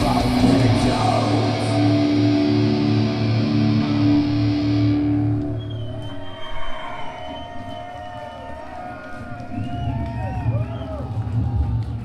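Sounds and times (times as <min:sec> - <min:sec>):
metal band playing: 0:00.0 - 0:05.6.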